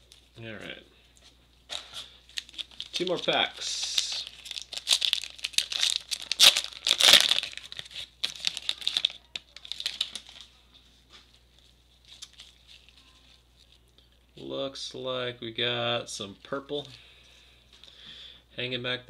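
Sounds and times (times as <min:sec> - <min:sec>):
handling of cards: 0:00.0 - 0:13.9
wrapper tearing and crinkling: 0:02.3 - 0:10.5, 0:12.0 - 0:13.8.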